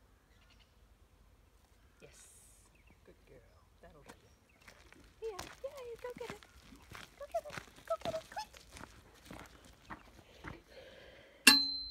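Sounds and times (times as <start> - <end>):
footsteps on dry grass: 4.5 - 10.7.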